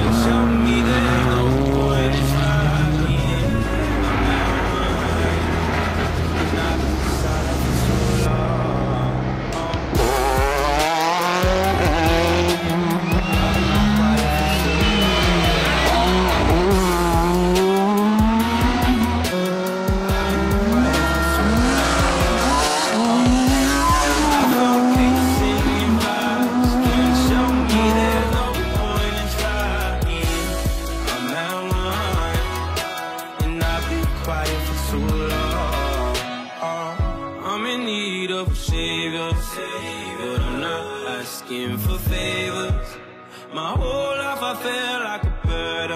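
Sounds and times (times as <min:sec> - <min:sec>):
rally car engine revving: 0:00.0 - 0:31.2
background music: 0:00.0 - 0:45.9.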